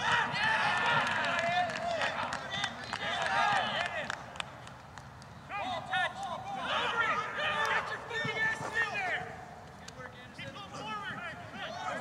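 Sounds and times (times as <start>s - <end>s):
men shouting and calling: 0.0s - 4.0s, 5.5s - 9.5s, 10.3s - 12.0s.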